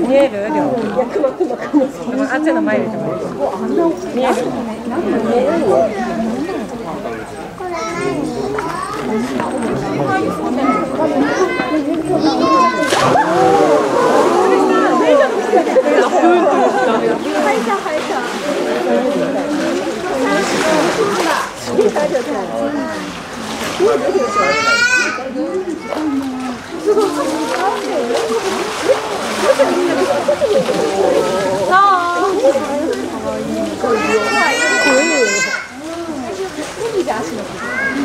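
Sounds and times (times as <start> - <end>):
chatter of many voices: 0.0 - 38.0
water sloshing: 0.0 - 38.0
sharp splash: 12.8 - 15.4, 17.2 - 22.2, 25.9 - 33.8.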